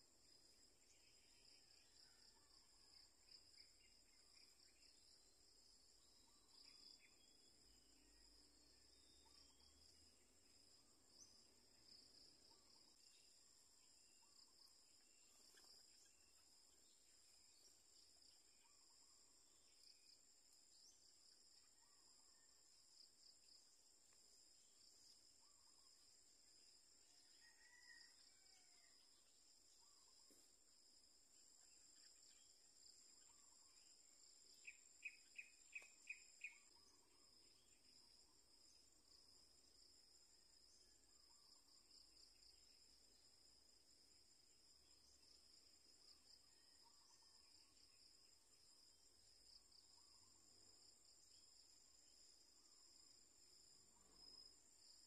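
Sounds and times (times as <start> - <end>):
insects trilling: 24.6 - 55.0.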